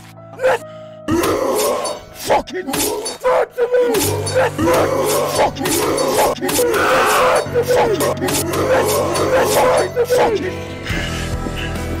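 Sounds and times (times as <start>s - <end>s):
moody music: 0.0s - 12.0s
wounded man groaning: 0.3s - 10.7s.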